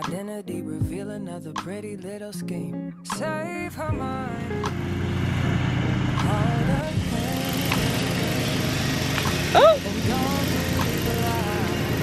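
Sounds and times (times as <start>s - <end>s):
motor humming: 4.8s - 12.0s.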